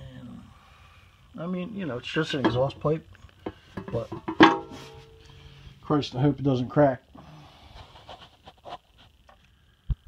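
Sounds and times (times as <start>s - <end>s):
metal part handling knocks: 2.4s - 2.7s, 3.4s - 5.3s
breath: 5.2s - 5.8s, 7.2s - 8.0s.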